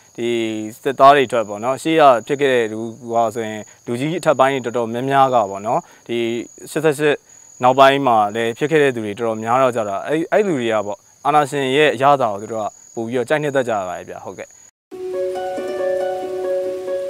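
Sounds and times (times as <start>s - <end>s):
high-pitched insect drone: 0.0s - 14.7s
man speaking: 0.2s - 14.5s.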